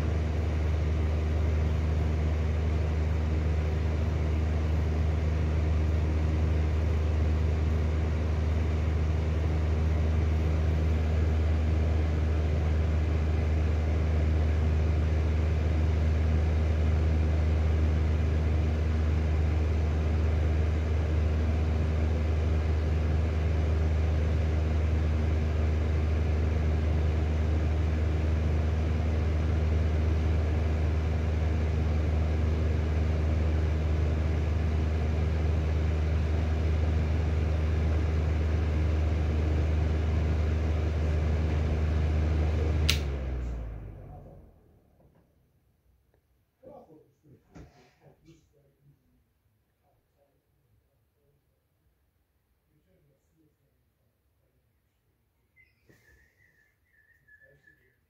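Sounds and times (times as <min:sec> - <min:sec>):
exhaust fan motor hum: 0:00.0 - 0:45.0.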